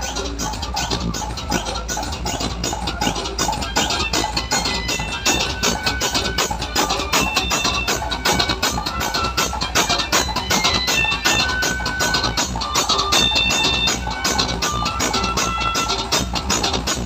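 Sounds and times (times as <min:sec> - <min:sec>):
dance music with heavy bass: 0:00.0 - 0:17.0
held synth notes: 0:00.0 - 0:17.0.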